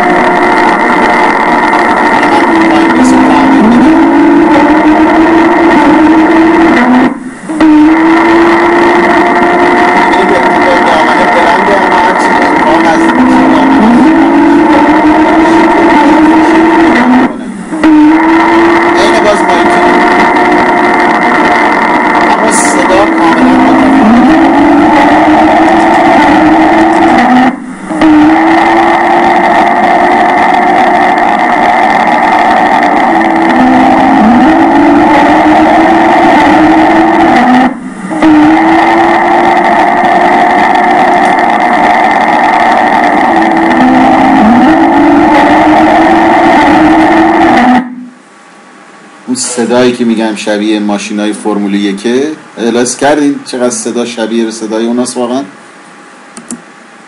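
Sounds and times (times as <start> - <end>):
loudspeaker high-pitched whine: 0.0 - 57.0.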